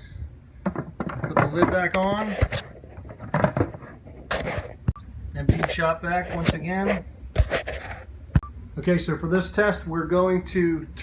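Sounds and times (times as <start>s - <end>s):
plastic containers scraping: 0.6s - 8.1s.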